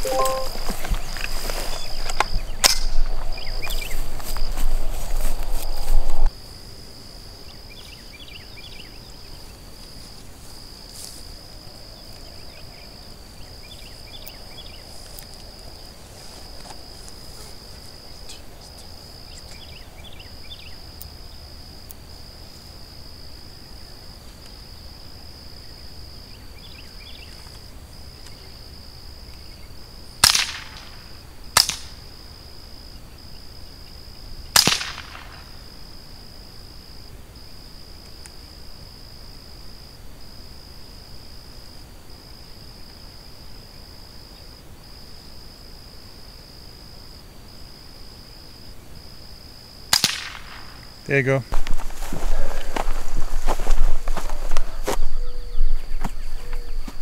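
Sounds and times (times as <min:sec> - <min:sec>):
rifle shots: 0:30.2 - 0:30.8, 0:34.6 - 0:35.2, 0:49.9 - 0:50.7.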